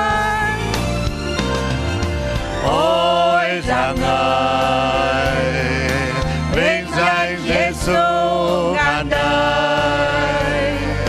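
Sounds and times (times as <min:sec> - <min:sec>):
instrumental backing: 0:00.0 - 0:11.0
choir singing worship song: 0:02.6 - 0:11.0.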